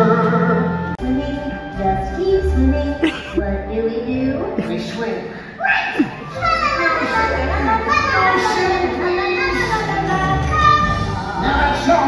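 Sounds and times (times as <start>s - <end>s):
stage show music: 0.0s - 12.0s.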